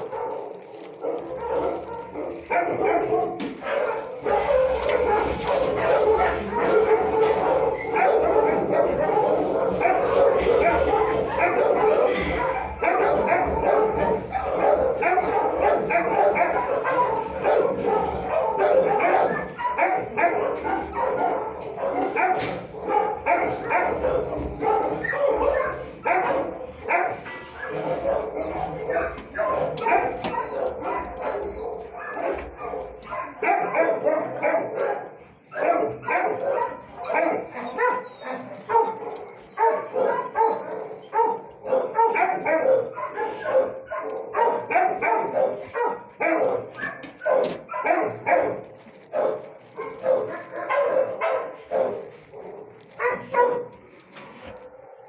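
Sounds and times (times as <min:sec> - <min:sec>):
many dogs barking: 0:00.0 - 0:55.0.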